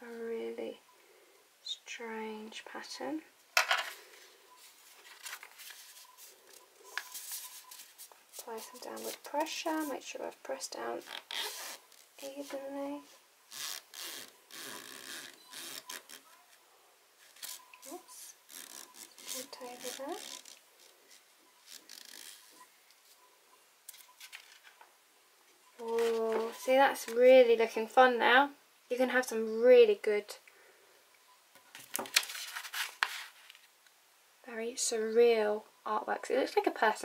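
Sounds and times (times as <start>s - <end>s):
paper rustling: 4.1s - 10.0s, 23.9s - 24.8s, 31.7s - 33.7s.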